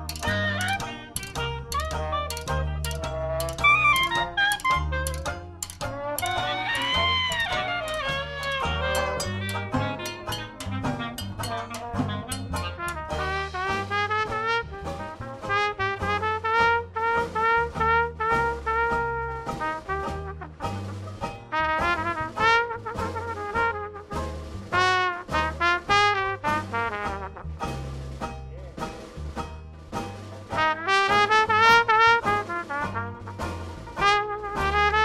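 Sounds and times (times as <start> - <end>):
brass horn melody: 0.0 - 27.8, 30.5 - 35.0
jazz band playing: 0.0 - 35.0.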